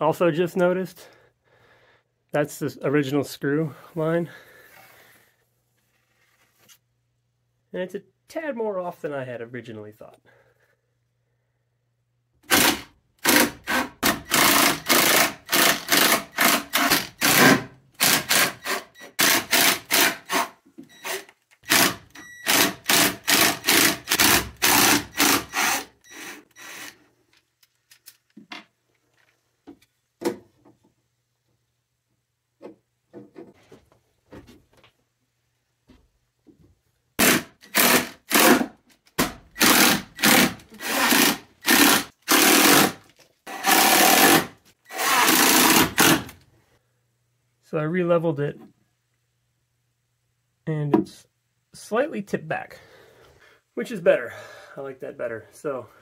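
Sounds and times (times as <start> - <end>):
cordless drill driving screws: 12.4 - 27.0, 37.2 - 38.7, 39.5 - 46.3.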